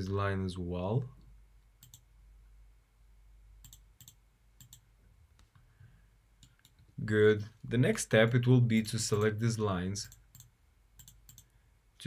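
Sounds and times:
computer mouse clicks: 1.8s - 2.1s, 3.6s - 5.6s, 10.0s - 11.5s.

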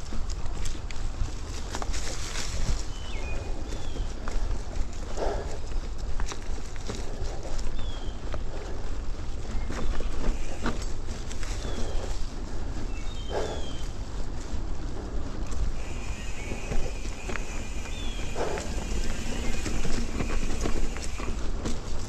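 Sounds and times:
bike clicks and rattles: 0.0s - 22.0s
wind and ground rumble: 0.0s - 22.0s.

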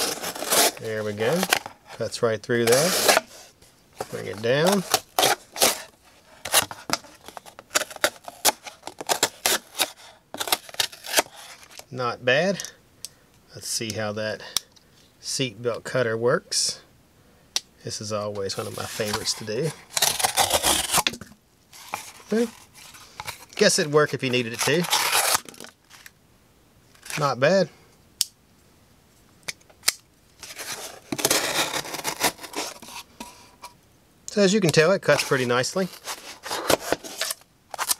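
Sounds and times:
knife slicing cardboard: 0.0s - 1.7s, 2.6s - 11.6s, 18.5s - 21.2s, 30.5s - 33.4s.

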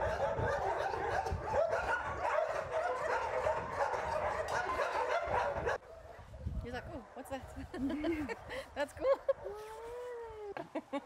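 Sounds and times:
dogs barking and yelping: 0.0s - 6.4s.

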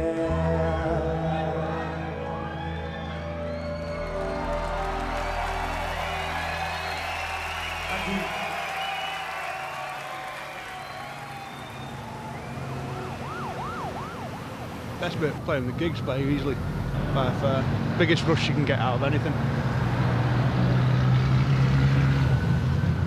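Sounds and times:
emergency siren wailing: 0.8s - 17.6s.

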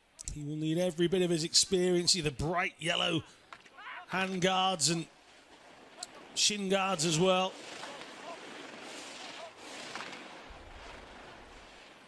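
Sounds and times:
skis scraping over hard snow: 5.3s - 12.0s.

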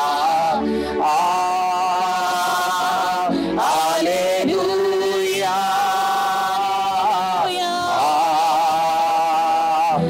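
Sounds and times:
man singing: 0.0s - 10.0s
woman singing: 6.1s - 8.8s.

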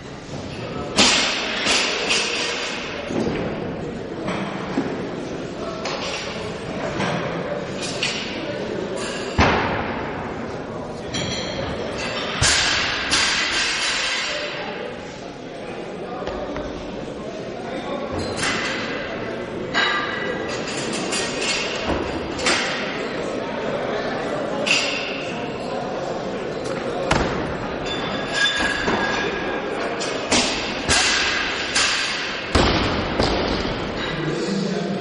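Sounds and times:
thuds and bangs echoing: 9.4s - 10.3s, 27.1s - 27.7s, 30.3s - 34.1s.

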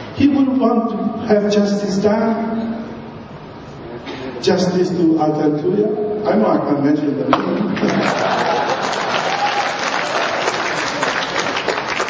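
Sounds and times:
audience applauding: 7.8s - 12.0s.

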